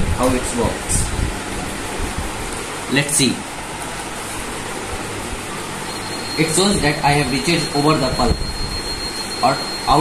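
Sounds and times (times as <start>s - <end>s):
steady background hiss: 0.0s - 10.0s
thin high beep tone: 5.9s - 10.0s.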